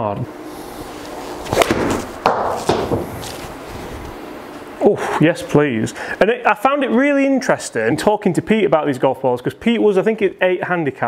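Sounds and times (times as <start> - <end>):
golf ball hitting impact screen: 1.6 - 3.1.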